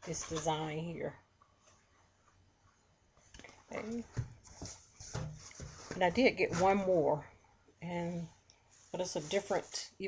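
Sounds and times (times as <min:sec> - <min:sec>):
placemats knocking and rustling: 0:03.2 - 0:07.2.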